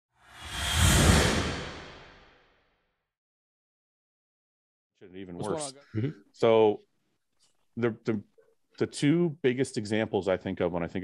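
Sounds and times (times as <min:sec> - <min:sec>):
cinematic whoosh: 0:00.2 - 0:02.6.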